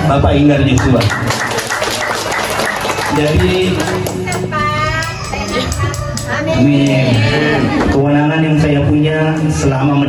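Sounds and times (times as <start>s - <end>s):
audience applause: 0.8s - 4.3s.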